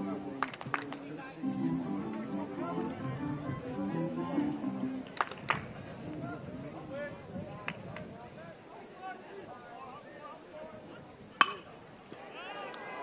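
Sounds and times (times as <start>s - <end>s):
crowd chatter: 0.0s - 13.0s
baseball bat hitting ball: 11.4s - 11.7s.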